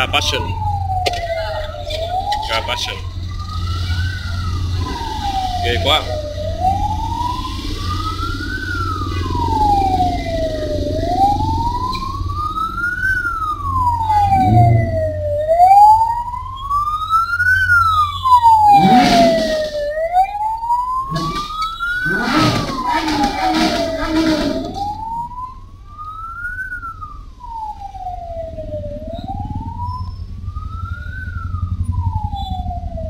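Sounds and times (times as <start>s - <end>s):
bursts of street noise: 0.0s - 33.0s
siren wailing: 0.0s - 33.0s
engines idling: 18.5s - 20.3s, 21.0s - 25.8s.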